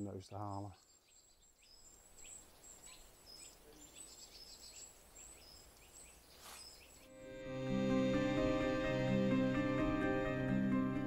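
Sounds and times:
small songbirds chirping: 0.0 - 7.1.

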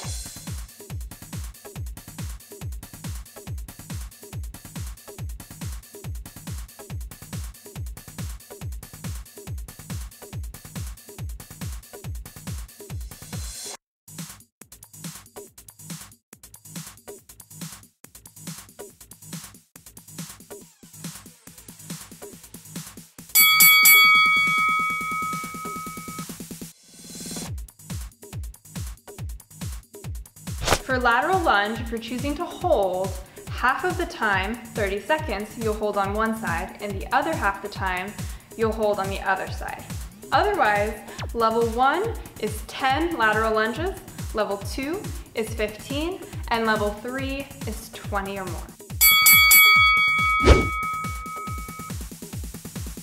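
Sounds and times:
bell ringing: 23.4 - 26.2, 49.0 - 51.9.

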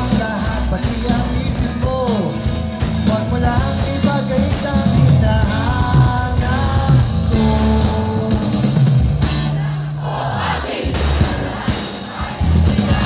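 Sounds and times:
live rock band playing: 0.0 - 13.0
person singing: 3.1 - 8.8.

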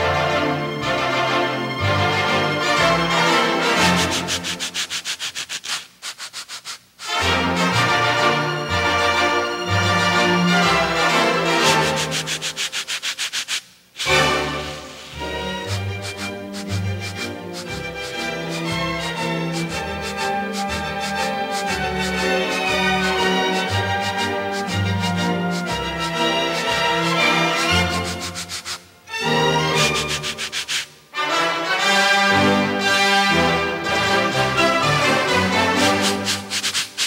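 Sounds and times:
back scratcher rasping on shirt: 3.8 - 7.8, 11.6 - 28.9, 29.8 - 31.0, 35.7 - 37.0.

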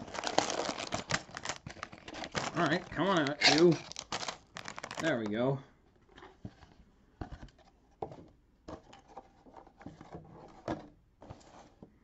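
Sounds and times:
plastic bags rustling: 0.0 - 5.6.

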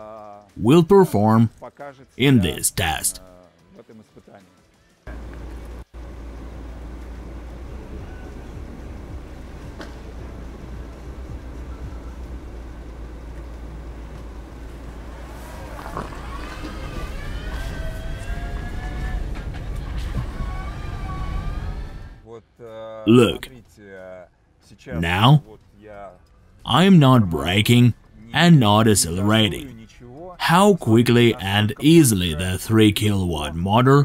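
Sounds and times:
tyres rolling on dirt road: 9.8 - 22.0.

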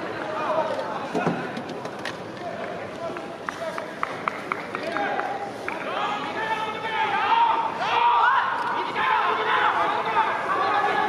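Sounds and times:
players shouting: 4.8 - 11.0.

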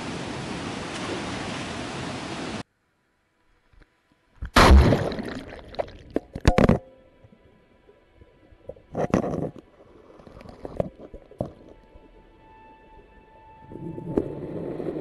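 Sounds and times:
rushing river water: 0.0 - 2.6.

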